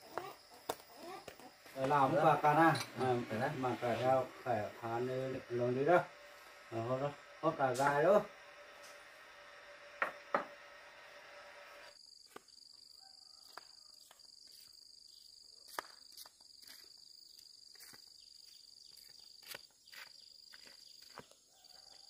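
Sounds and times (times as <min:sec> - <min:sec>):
high-pitched insect trill: 0:00.0 - 0:10.8, 0:11.9 - 0:22.0.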